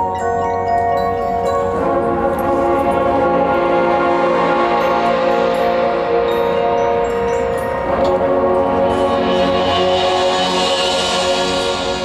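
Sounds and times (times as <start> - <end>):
marching band playing chords: 0.0 - 12.0.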